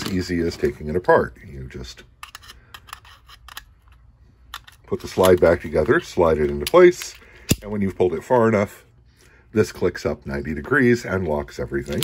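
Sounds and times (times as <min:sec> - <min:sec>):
metallic clicks and scrapes: 0:01.9 - 0:07.7.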